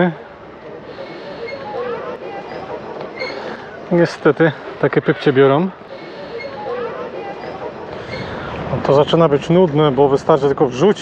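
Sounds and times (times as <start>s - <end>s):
faint distant voices talking: 0.0s - 11.0s.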